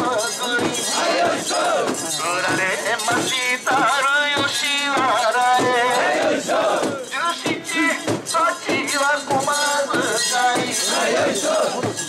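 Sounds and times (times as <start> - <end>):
men shouting a chant: 0.0 - 12.0.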